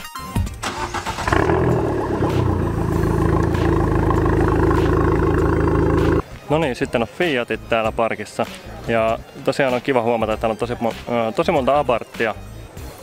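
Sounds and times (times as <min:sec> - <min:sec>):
music: 0:00.0 - 0:13.0
car engine starting and idling: 0:00.6 - 0:06.2.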